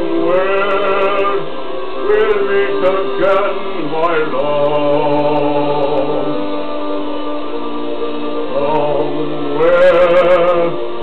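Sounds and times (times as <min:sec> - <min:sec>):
man singing: 0:00.0 - 0:06.8, 0:08.4 - 0:11.0
karaoke backing track: 0:00.0 - 0:11.0.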